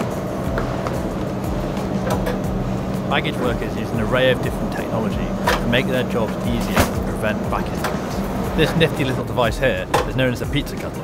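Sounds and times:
conveyor machinery hum: 0.0 - 11.0.

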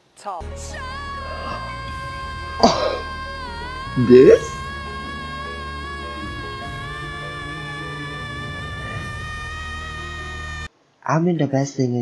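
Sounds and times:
woman singing a high note: 0.2 - 10.7
low drone: 0.5 - 10.7
man's cough-like outburst: 2.6 - 3.0.

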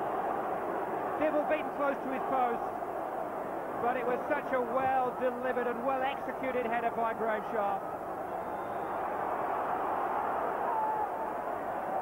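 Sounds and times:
stadium crowd din: 0.0 - 12.0.

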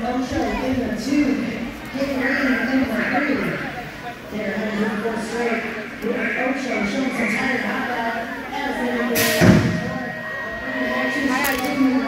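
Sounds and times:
spectators talking: 0.0 - 12.0
loud thump: 9.2 - 10.0.

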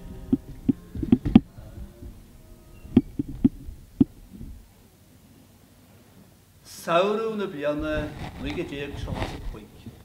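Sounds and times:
sharp knocks: 0.0 - 2.2
musical tone: 0.0 - 4.1.

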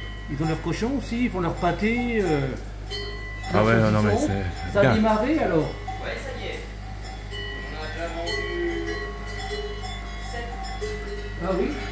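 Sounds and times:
cowbells ringing: 0.0 - 11.9
steady low hum: 0.0 - 11.9.

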